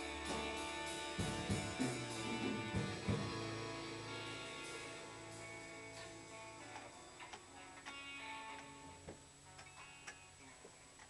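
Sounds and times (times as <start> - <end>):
band playing softly: 0.0 - 11.0.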